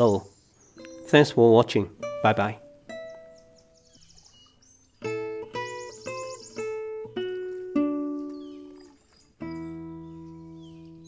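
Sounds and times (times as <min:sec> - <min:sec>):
plucked acoustic guitar note: 0:00.8 - 0:03.8, 0:05.0 - 0:11.0.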